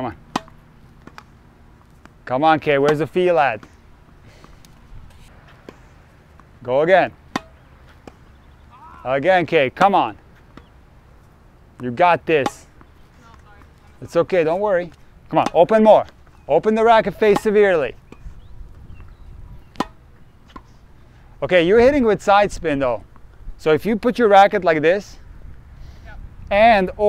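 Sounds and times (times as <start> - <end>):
tennis racket hitting ball: 0.2 - 1.3, 2.7 - 3.8, 7.1 - 8.6, 12.3 - 13.8, 15.3 - 15.8, 19.6 - 20.7
faint distant tennis hit: 7.2 - 8.3, 19.7 - 20.7.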